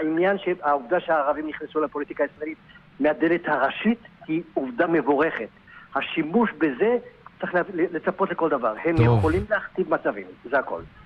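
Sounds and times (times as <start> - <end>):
man talking: 8.9 - 9.5.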